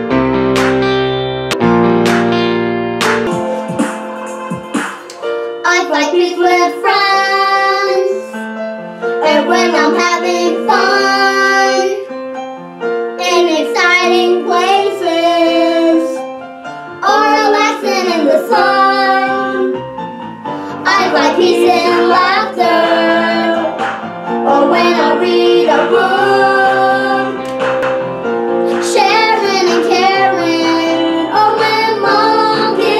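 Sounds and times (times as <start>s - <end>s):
keyboard accompaniment: 0.0s - 32.9s
girl singing: 5.5s - 8.4s, 9.2s - 12.1s, 13.2s - 16.2s, 17.0s - 19.7s, 20.8s - 23.6s, 28.8s - 32.9s.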